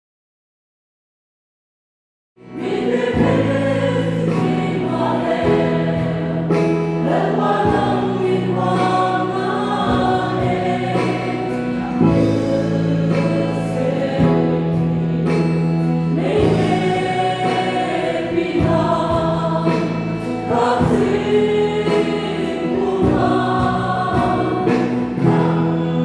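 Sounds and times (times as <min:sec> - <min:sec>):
group singing: 0:02.4 - 0:26.0
worship band playing: 0:02.4 - 0:26.0.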